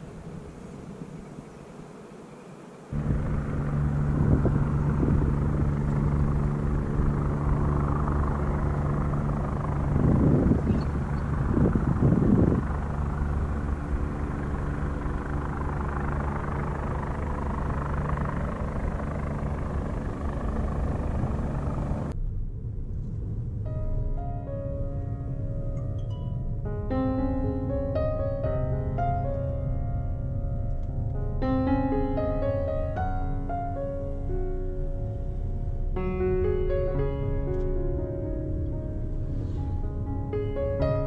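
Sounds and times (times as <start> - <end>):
low engine drone: 2.8 - 41.0.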